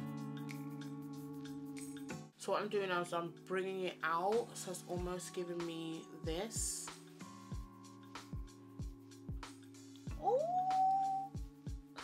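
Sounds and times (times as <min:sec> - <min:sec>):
background music with thumping beat: 0:00.0 - 0:02.4, 0:04.2 - 0:12.0
woman singing ooh: 0:10.2 - 0:11.4.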